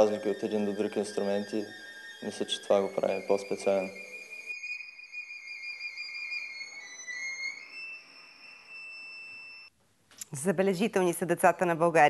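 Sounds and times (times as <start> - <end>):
violin slow melody: 0.0 - 9.7.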